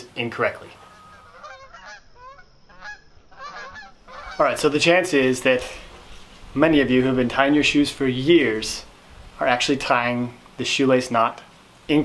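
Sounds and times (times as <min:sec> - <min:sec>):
geese honking: 0:00.6 - 0:06.3.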